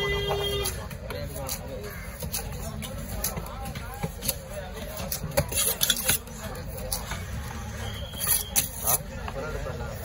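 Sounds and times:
knife chopping fish on wood: 1.0 - 7.2.

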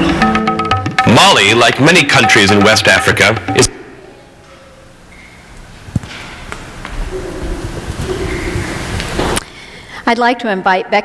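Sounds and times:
faint wavering hum: 3.4 - 10.1.

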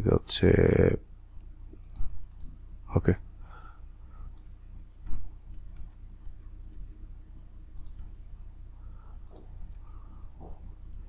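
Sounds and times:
computer mouse clicks: 1.4 - 2.6, 3.6 - 6.0, 7.7 - 8.2, 9.2 - 9.8.

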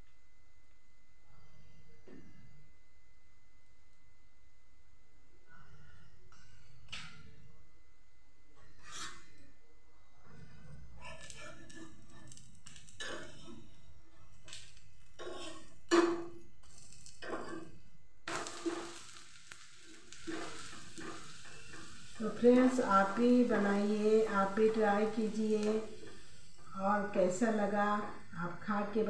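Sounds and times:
metal spatula scraping griddle: 8.6 - 9.4, 15.2 - 27.4
oil sizzling on griddle: 14.5 - 28.1.

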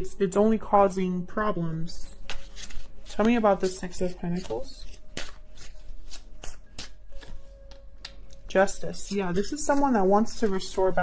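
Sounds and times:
cards being shuffled: 2.2 - 8.2, 8.9 - 11.0.

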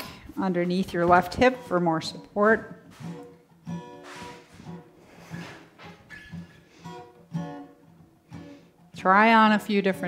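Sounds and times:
acoustic guitar plucked notes: 0.0 - 10.0.

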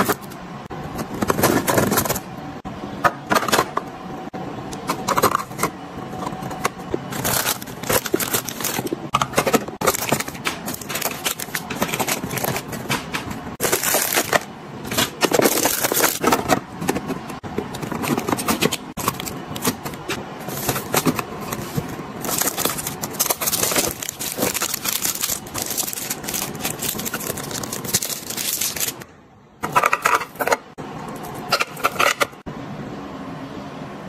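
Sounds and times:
wrappers crinkling and rustling: 7.1 - 9.0, 13.6 - 16.3, 20.5 - 29.0.

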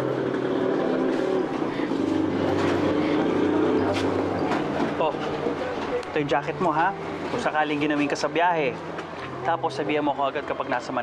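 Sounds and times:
bus engine running: 0.0 - 11.0
murmur of voices: 0.4 - 11.0.

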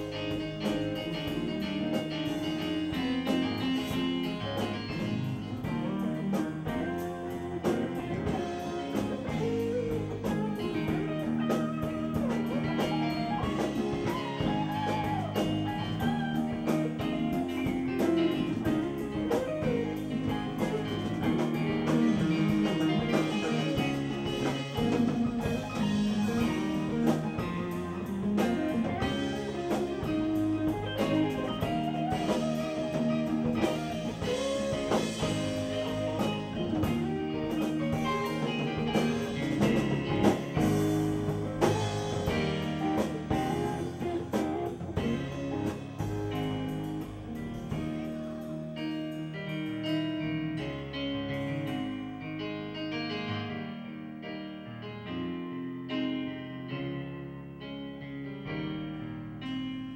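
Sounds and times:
drum kit: 0.0 - 53.3
bass guitar: 0.0 - 59.9
electric guitar: 0.0 - 59.9
electric keyboard: 0.0 - 59.9.

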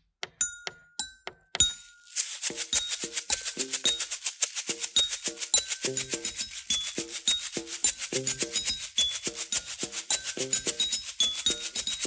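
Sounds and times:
kitchen objects struck by hand: 0.2 - 4.0, 4.7 - 12.0
bottle of grains shaken as maraca: 1.6 - 12.0.

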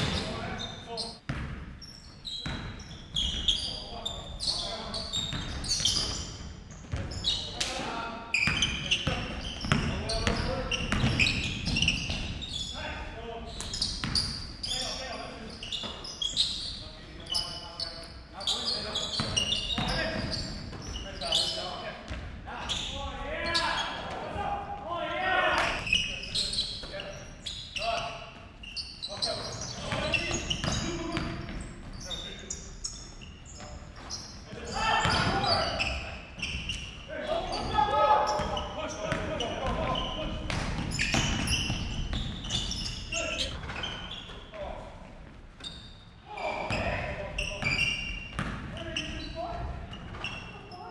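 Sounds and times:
basketball bouncing on hardwood floor: 9.6 - 12.2, 48.3 - 48.7
players shouting: 34.6 - 36.0.

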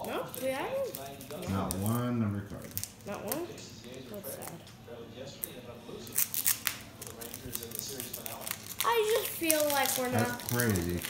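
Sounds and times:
foil wrapper tearing and crinkling: 0.0 - 4.6, 5.4 - 11.0.

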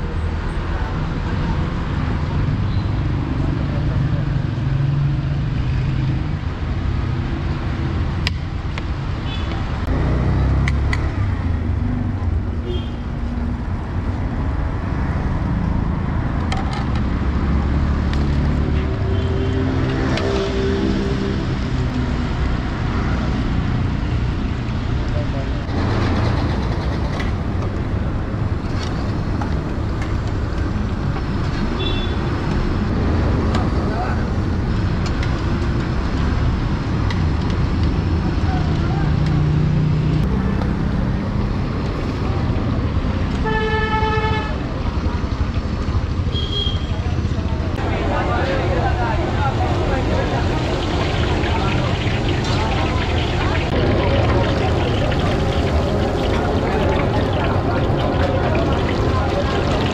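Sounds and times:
rumble of traffic engines: 0.0 - 59.9
vehicle horn: 19.0 - 20.8, 43.4 - 44.6, 46.3 - 46.9.

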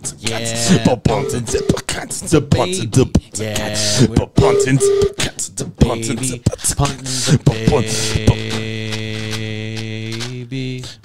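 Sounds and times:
man droning a low chant note: 0.6 - 1.9.

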